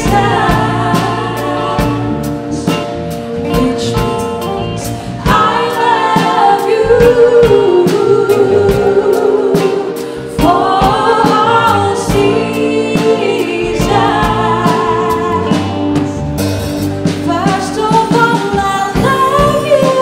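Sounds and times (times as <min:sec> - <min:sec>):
live soul band playing: 0:00.0 - 0:20.0
steady drum beat: 0:00.0 - 0:20.0.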